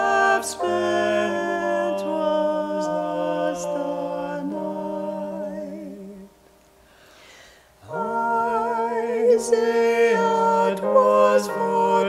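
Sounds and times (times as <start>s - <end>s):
man and woman singing in harmony: 0.0s - 6.4s, 7.8s - 12.0s.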